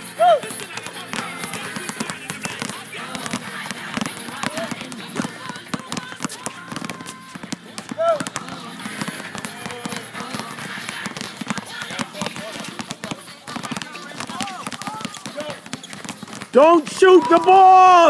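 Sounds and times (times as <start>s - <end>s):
background voices: 0.1s - 15.4s
basketballs bouncing on hard court: 0.2s - 18.0s.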